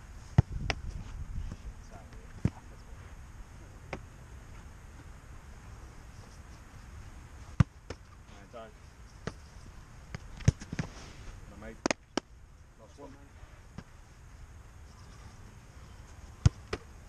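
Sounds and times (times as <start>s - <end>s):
football thuds: 0.3s - 1.1s, 7.5s - 8.1s, 9.2s - 9.5s, 10.1s - 10.9s, 13.7s - 13.9s, 16.4s - 16.9s.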